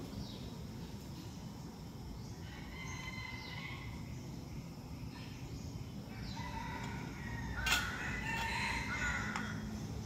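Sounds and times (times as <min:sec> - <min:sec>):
rooster crowing: 0:02.4 - 0:04.0, 0:06.1 - 0:09.7.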